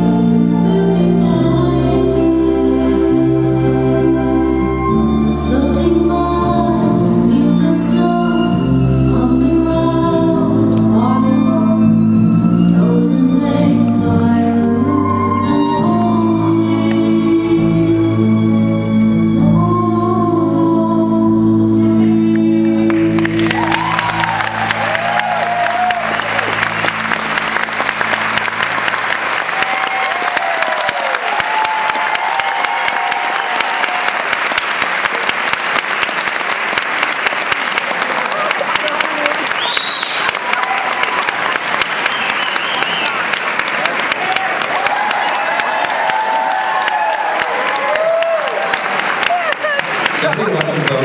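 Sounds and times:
waltz music: 0:00.0 - 0:29.4
audience applauding: 0:22.7 - 0:51.0
audience cheering: 0:23.2 - 0:51.0.

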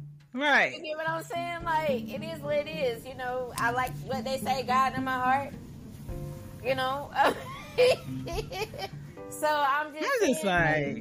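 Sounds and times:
person laughing: 0:07.2 - 0:09.0.

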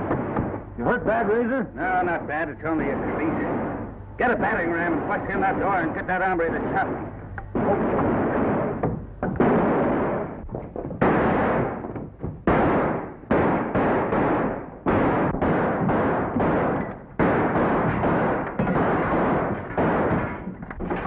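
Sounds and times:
gunshots ringing: 0:00.0 - 0:21.0.

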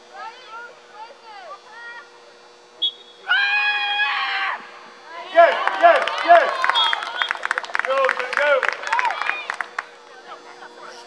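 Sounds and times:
spectator yelling: 0:03.2 - 0:07.3.

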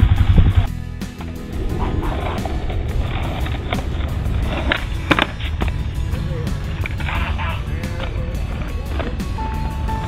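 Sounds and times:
skateboard clacks: 0:06.8 - 0:09.4.

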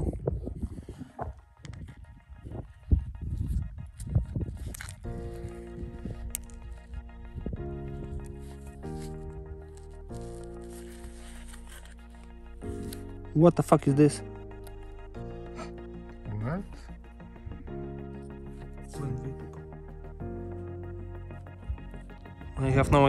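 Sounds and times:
background music with sustained chords: 0:00.0 - 0:23.0.

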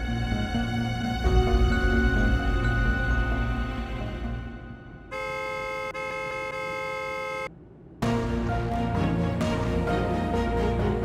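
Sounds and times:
car horn blasts: 0:05.1 - 0:07.5.

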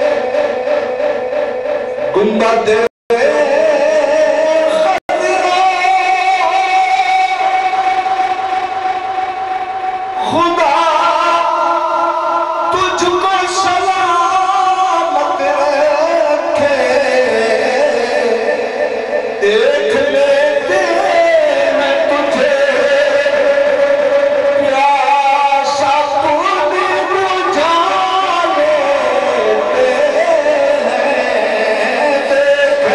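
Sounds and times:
man chanting through microphone: 0:00.0 - 0:32.9
man singing long note: 0:00.0 - 0:32.9.

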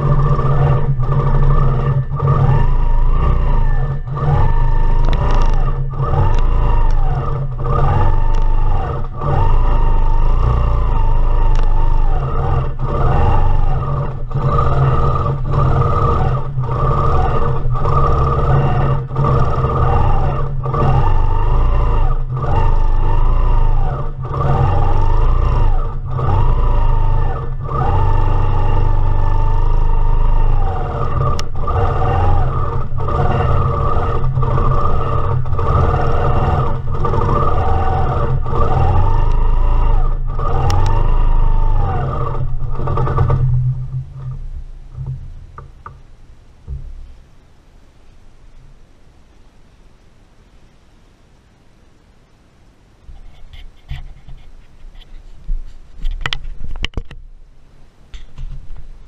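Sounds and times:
quilting machine motor whining: 0:00.0 - 0:46.0.

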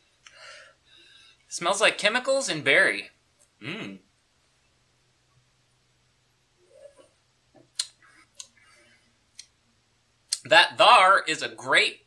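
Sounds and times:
mouth clicks: 0:10.3 - 0:10.5.

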